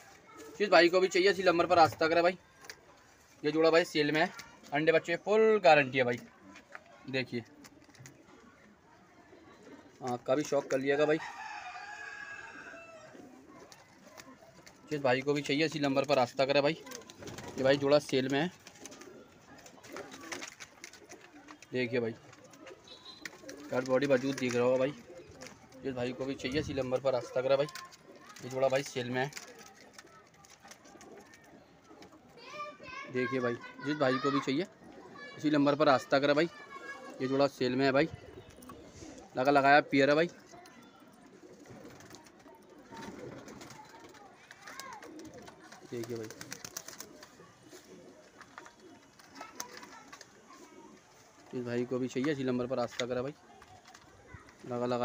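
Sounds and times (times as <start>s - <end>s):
pigeons cooing: 5.8s - 55.0s.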